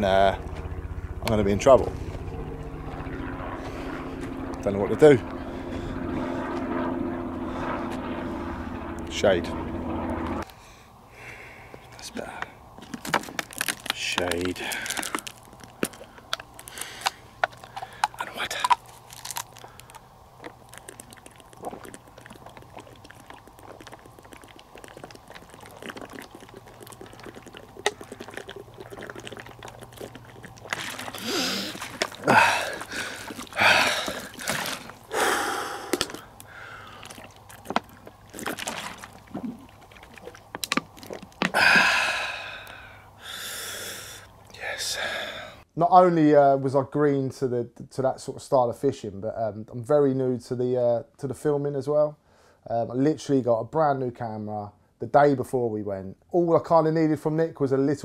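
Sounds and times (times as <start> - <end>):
plastic bottle crinkling: 12.3 - 41.9
man gasping and exhaling: 14.6 - 15.4, 16.0 - 18.8, 30.8 - 37.3, 41.4 - 45.6.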